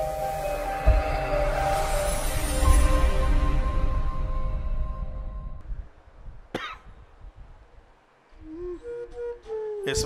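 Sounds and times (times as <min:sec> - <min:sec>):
intro music: 0:00.0 - 0:05.6
short cough: 0:06.5 - 0:06.9.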